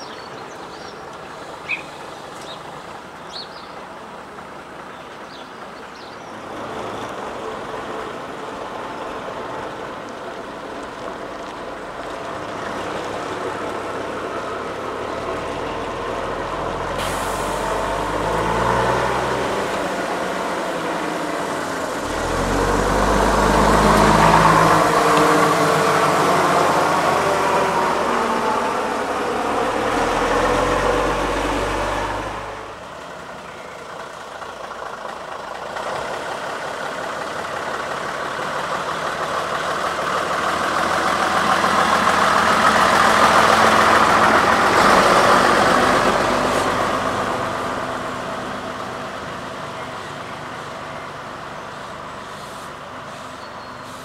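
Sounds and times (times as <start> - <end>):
bus diesel engine pulling away: 0.0 - 54.0
bus engine passing by: 0.0 - 54.0.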